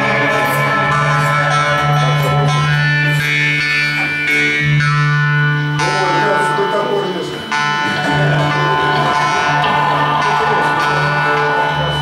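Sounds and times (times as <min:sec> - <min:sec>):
jaw harps droning: 0:00.0 - 0:12.0.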